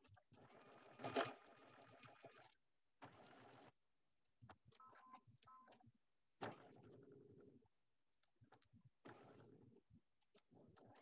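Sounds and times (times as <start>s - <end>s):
sewing machine stitching: 0.0s - 3.8s, 9.0s - 9.8s.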